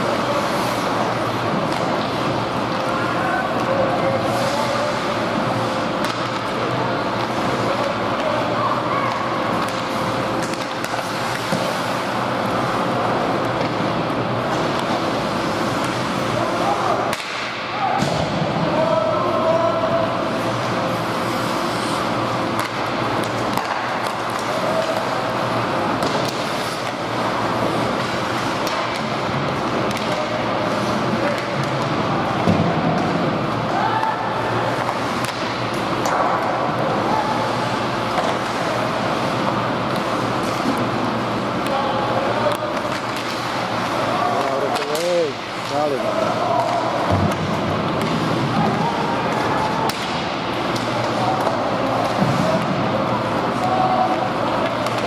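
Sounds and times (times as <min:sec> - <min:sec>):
skates on ice: 0:00.0 - 0:03.0, 0:20.6 - 0:31.7
rushing hum of arena: 0:00.0 - 0:55.0
hockey sticks and puck clicking: 0:00.1 - 0:05.1, 0:05.7 - 0:08.5, 0:09.1 - 0:16.2, 0:17.1 - 0:17.6, 0:21.2 - 0:37.0, 0:37.6 - 0:41.8, 0:42.4 - 0:55.0.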